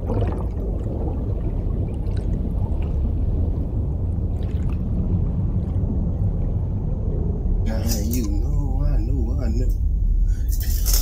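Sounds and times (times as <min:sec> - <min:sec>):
faint gurgling: 0:00.0 - 0:06.4
underwater rumble of water: 0:00.0 - 0:11.0.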